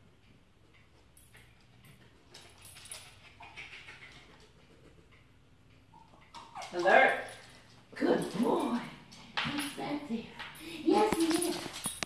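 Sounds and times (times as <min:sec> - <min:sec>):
dog claws clicking on wooden floor: 0:00.7 - 0:12.0.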